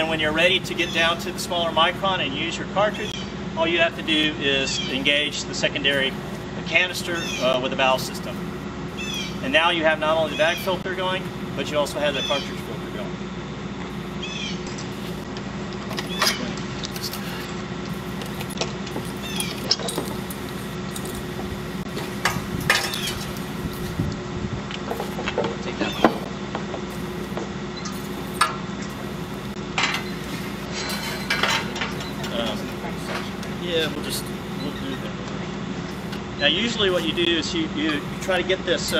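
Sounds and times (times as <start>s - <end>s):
pump humming: 0.0s - 38.9s.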